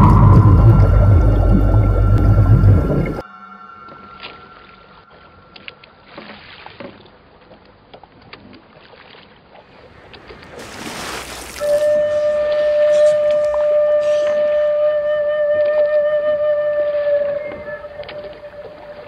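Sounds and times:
deep underwater rumble: 0.0 - 3.2
sea water lapping and splashing: 3.9 - 19.0
rush of water: 4.2 - 19.0.

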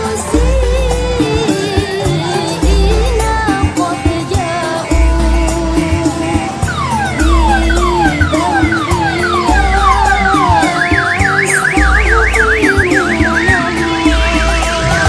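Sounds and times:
loud music with heavy bass: 0.0 - 15.0
electronic siren whooping: 6.6 - 15.0.

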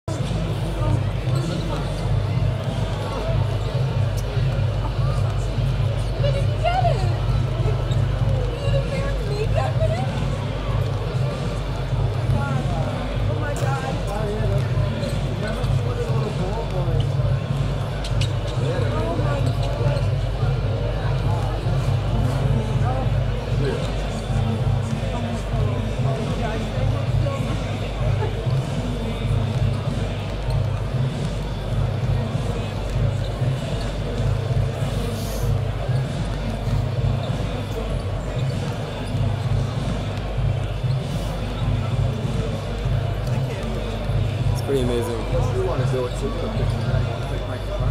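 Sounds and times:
crowd noise in echoing hall: 0.0 - 47.9
music over public address: 0.1 - 47.9
voices: 0.1 - 47.9
basketballs bouncing on court: 35.6 - 44.6.

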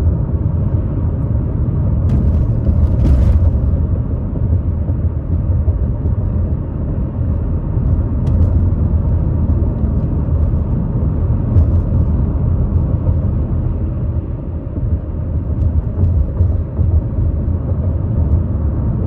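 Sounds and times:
car engine rumble: 0.0 - 19.0
tyre noise on paved road: 0.0 - 19.0.

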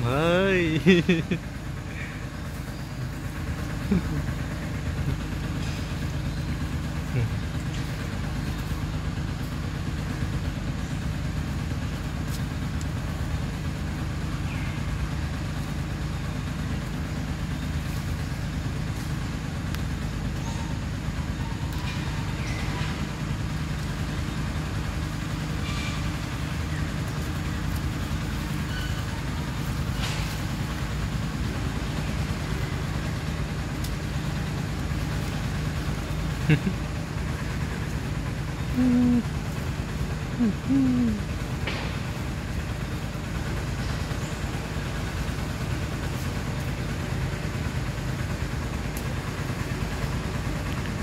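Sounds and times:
low mechanical drone: 0.0 - 51.0.

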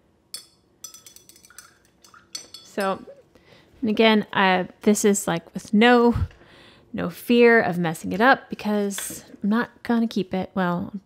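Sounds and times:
paintbrush clinking on glass dishes: 0.4 - 3.1.

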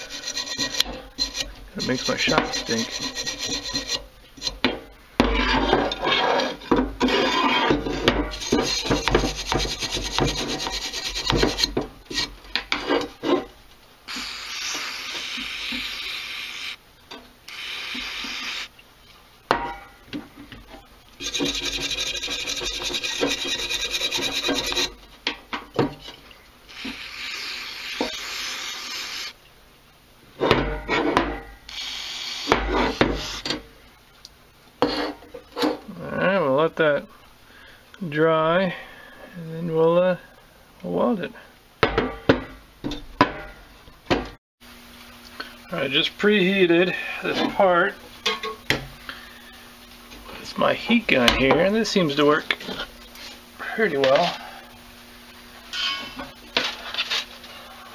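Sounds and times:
stiff brush scrubbing metal: 0.0 - 4.6, 5.2 - 13.5, 21.2 - 25.0
aerosol spray hissing: 14.1 - 16.8, 17.5 - 18.7, 26.7 - 29.4.

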